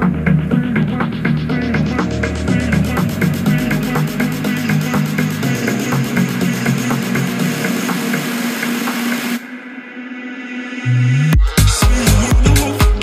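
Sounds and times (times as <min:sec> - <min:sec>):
electronic music with steady beat: 0:00.0 - 0:13.0.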